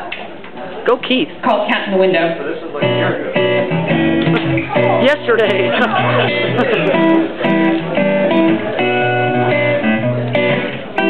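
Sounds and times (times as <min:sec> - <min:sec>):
guitar strumming chords: 0:02.8 - 0:11.0.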